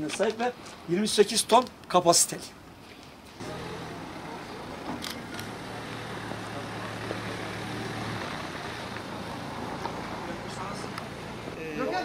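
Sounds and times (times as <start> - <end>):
truck engine idling: 3.4 - 11.6.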